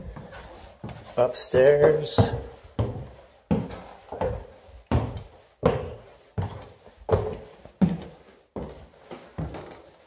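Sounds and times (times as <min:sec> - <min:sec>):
footsteps on wooden stairs: 0:00.0 - 0:10.0.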